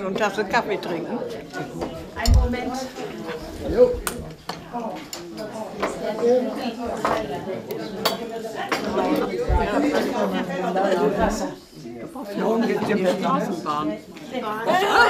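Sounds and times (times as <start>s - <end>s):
many people chatting: 0.0s - 15.0s
cups and cutlery clinking: 7.0s - 9.2s.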